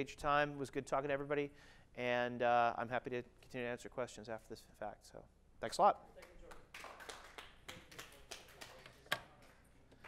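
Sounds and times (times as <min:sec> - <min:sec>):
faint scattered applause: 0:06.2 - 0:09.7.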